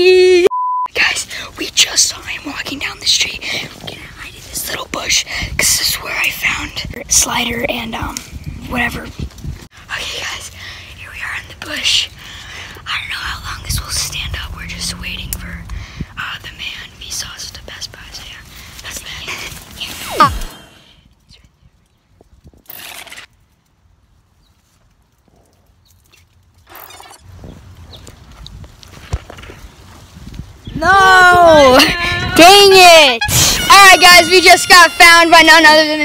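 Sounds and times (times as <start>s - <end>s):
person whispering: 12.9s - 20.3s
falling pitch sweep: 13.7s - 15.9s.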